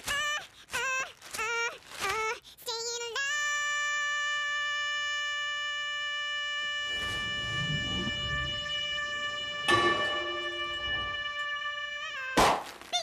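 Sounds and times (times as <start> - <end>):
sped-up high-pitched singing voice: 0.0 - 9.8
low noise: 6.8 - 12.0.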